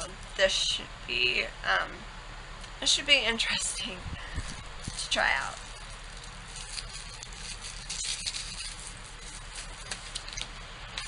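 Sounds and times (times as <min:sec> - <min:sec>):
faint rustling of packaging: 0:04.2 - 0:11.0.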